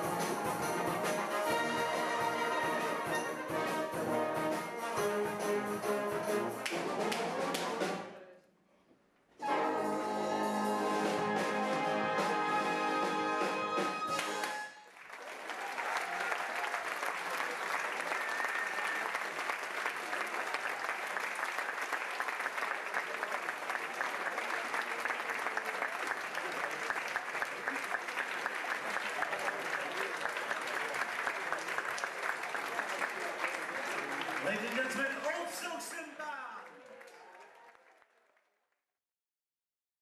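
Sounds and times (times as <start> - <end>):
audience applauding: 0.0 - 7.9, 10.4 - 38.6
man's voice: 34.4 - 36.7.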